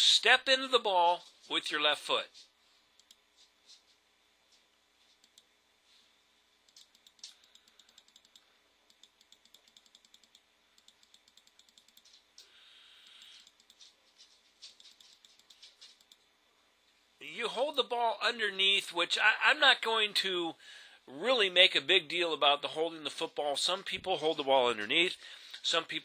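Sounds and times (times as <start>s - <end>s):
computer keys clicking: 6.7s - 12.2s, 14.7s - 16.2s.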